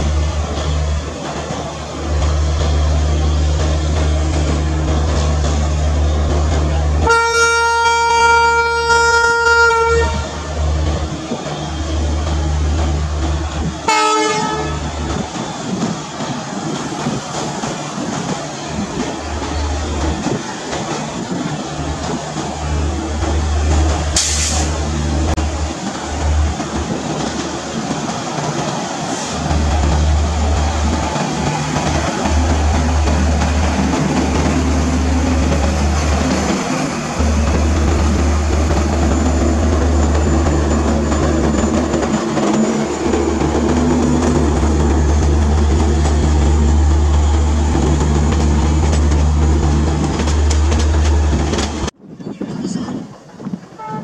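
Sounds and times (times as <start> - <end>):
train wheels rumbling on rail: 0.0 - 54.0.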